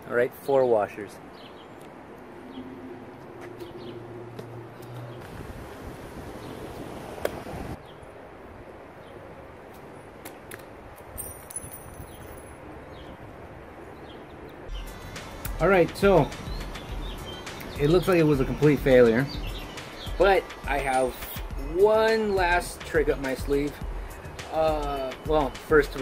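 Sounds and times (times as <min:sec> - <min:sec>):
birds chirping: 0:00.0 - 0:08.2, 0:11.6 - 0:26.0.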